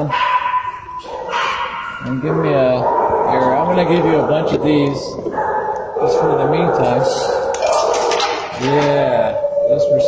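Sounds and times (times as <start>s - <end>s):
dog yelp: 0.0s - 4.4s, 5.2s - 10.0s.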